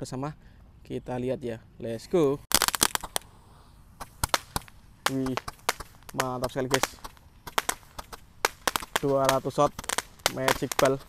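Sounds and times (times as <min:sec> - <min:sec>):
firework sharp pops: 0:02.5 - 0:11.0.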